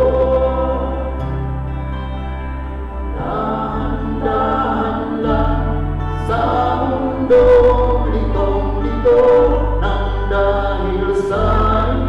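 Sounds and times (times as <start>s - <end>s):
choir singing: 0.0s - 1.8s, 2.8s - 12.0s
low held bass notes: 0.0s - 12.0s.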